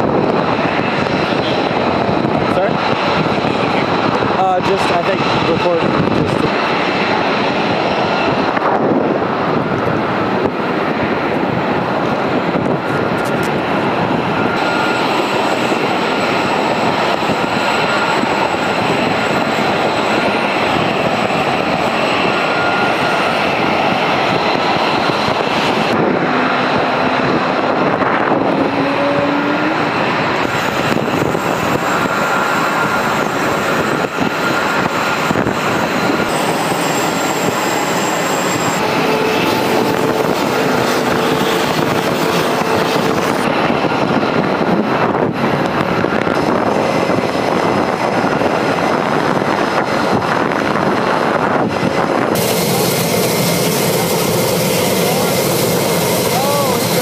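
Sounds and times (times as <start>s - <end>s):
high turbine whines: 0.0s - 57.0s
jet engines running: 0.0s - 57.0s
short rising tone: 26.0s - 30.7s.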